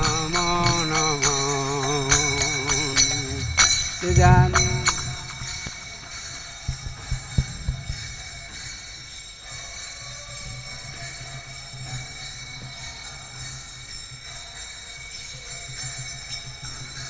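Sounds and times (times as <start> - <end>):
hand bell ringing: 0.0 - 6.9.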